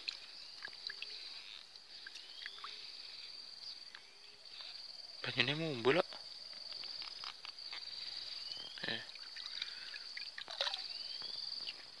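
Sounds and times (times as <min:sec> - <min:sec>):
water splashing and dripping: 0:00.0 - 0:02.8, 0:08.8 - 0:11.8
high insect trill: 0:00.0 - 0:12.0.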